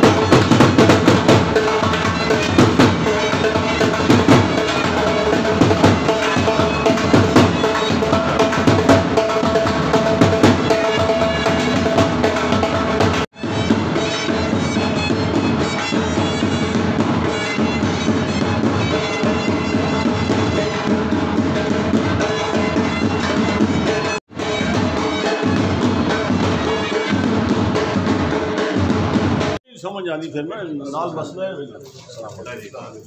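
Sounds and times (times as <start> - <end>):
bagpipes: 0.0 - 27.8
marching drums: 0.0 - 29.6.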